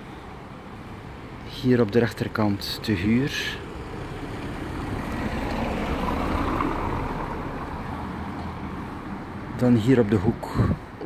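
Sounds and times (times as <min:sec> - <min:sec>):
motor vehicle passing: 0:02.7 - 0:10.0.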